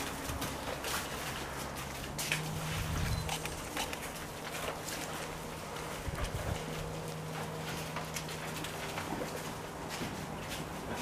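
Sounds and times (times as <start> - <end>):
paws thudding on wooden pallets: 0.0 - 11.0
steady low hum: 0.0 - 11.0.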